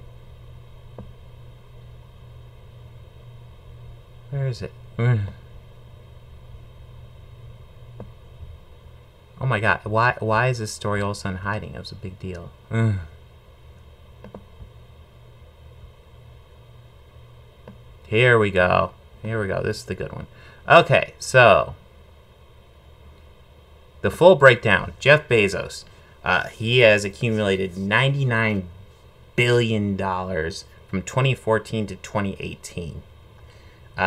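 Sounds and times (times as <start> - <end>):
faint hiss: 0.0 - 34.0
low hum: 0.0 - 34.0.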